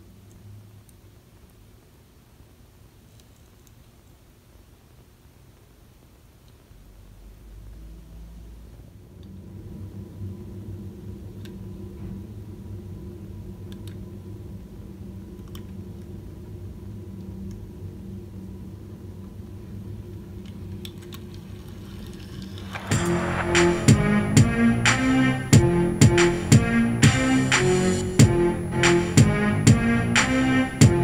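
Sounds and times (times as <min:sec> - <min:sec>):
low mechanical hum: 0:00.0 - 0:31.0
faint light clicks: 0:13.7 - 0:14.0.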